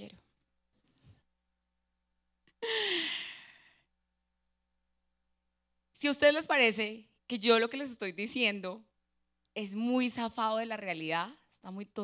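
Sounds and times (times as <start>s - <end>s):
woman sighing into microphone: 2.6s - 3.8s.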